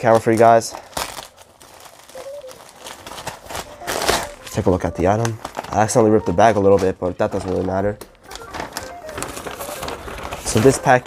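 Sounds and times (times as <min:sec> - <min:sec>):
plastic crinkling and rustling: 0:00.0 - 0:11.0
plastic mailer bag ripping: 0:00.0 - 0:11.0.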